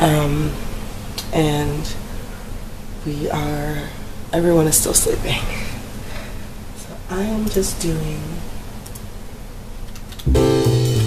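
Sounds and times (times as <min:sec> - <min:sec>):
low room noise: 0:00.0 - 0:11.0
faint sharp clicks: 0:08.8 - 0:09.1.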